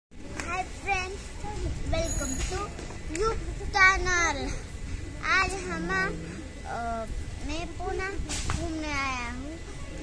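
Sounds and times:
young boy speaking: 0:00.4 - 0:09.7.

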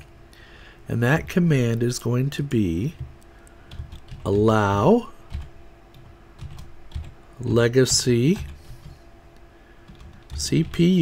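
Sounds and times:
faint steady hum: 0:00.0 - 0:11.0
keyboard typing: 0:03.0 - 0:04.4, 0:05.3 - 0:07.2, 0:08.2 - 0:09.0, 0:09.8 - 0:10.9.

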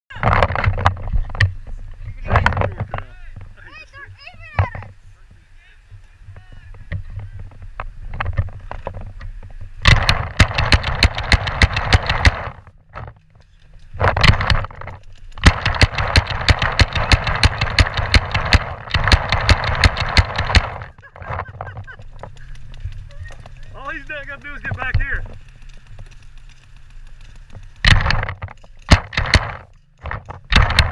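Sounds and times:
paintball gun firing: 0:09.8 - 0:12.6, 0:14.0 - 0:21.0, 0:23.2 - 0:30.9
balls striking bunker: 0:27.8 - 0:30.9.

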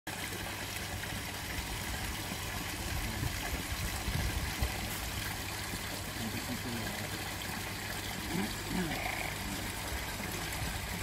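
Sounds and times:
water trickling into pond: 0:00.1 - 0:11.0.

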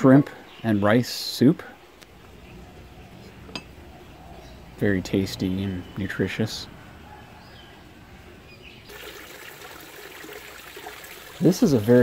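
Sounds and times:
fountain water splashing into pond: 0:08.9 - 0:12.0.

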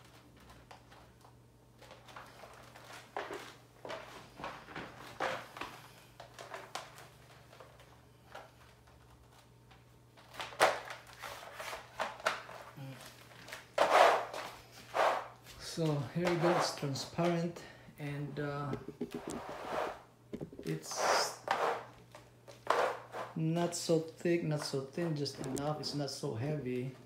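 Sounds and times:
plastic sheet slapping tiles: 0:00.0 - 0:17.4
plastic mat rustling and scuffing: 0:00.0 - 0:17.5, 0:18.7 - 0:23.9.

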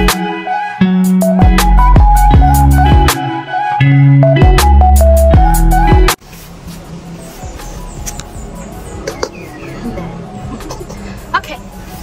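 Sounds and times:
background music: 0:00.0 - 0:06.2, 0:07.0 - 0:12.0.

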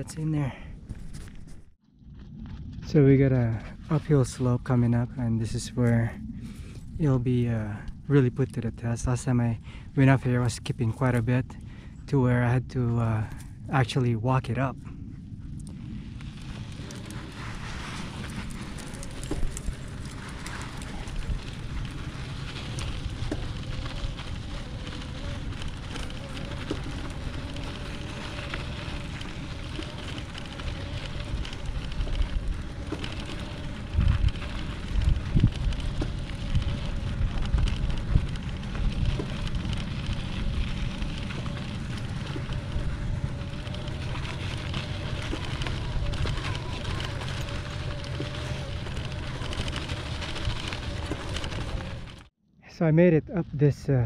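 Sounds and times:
tyres crackling over gravel: 0:00.0 - 0:14.8, 0:15.4 - 0:52.3
wind rumble on microphone: 0:00.0 - 0:52.3
heavy bumps: 0:14.9 - 0:52.3
e-bike motor whining: 0:15.0 - 0:52.3.

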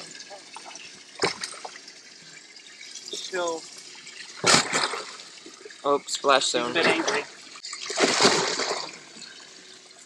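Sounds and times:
water trickling and dripping: 0:00.0 - 0:10.0
fish thrashing in water: 0:04.4 - 0:05.2, 0:07.6 - 0:09.0.

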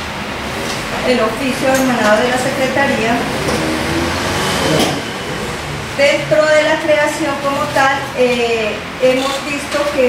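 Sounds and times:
room background noise: 0:00.0 - 0:10.0.

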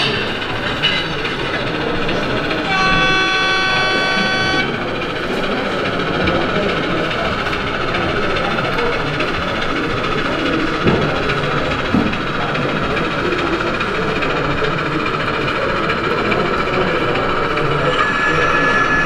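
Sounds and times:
model locomotive running: 0:00.0 - 0:19.0.

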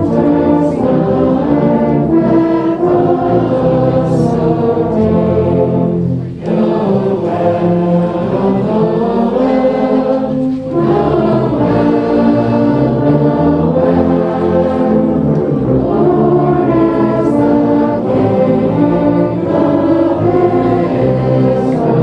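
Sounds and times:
tubas and euphoniums playing a carol: 0:00.0 - 0:22.0.

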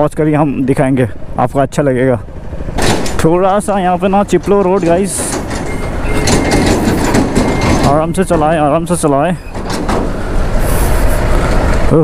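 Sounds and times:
motorcycle rumbling on rough road: 0:00.0 - 0:12.0.

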